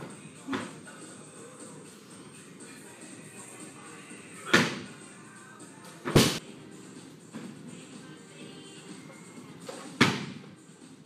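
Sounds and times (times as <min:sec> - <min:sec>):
barbell slam: 0:06.1 - 0:06.4.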